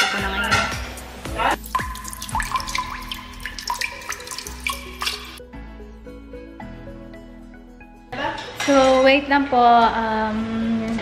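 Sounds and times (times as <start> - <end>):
tap running into sink: 1.6 - 5.4.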